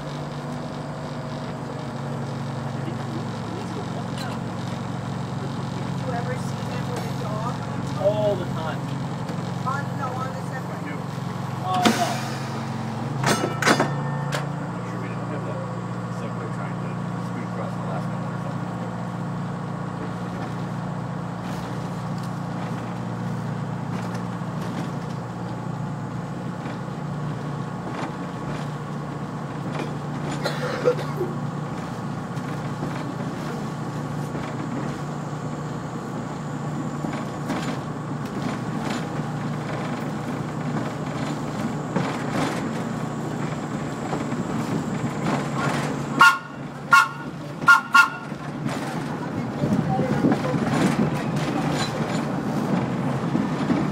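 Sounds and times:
rail car rumbling on track: 0:00.0 - 0:53.9
short horn toots: 0:46.2 - 0:48.4.

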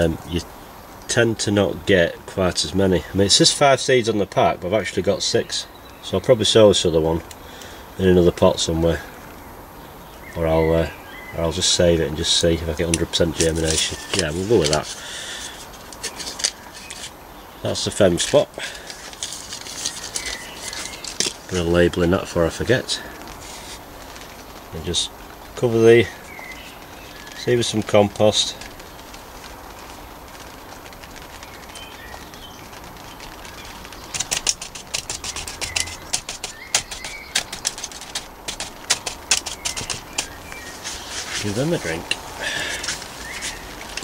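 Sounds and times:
paper seed packet crinkling: 0:12.2 - 0:44.0
plastic bottle crackling: 0:12.7 - 0:44.0.

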